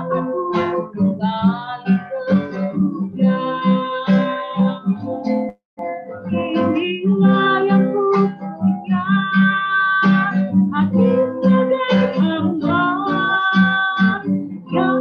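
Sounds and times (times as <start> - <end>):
woman singing worship song: 0.0 - 5.0, 6.3 - 15.0
strummed acoustic guitar: 0.0 - 15.0.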